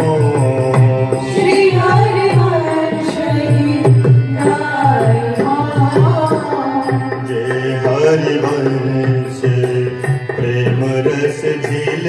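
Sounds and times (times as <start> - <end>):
harmonium: 0.0 - 12.0.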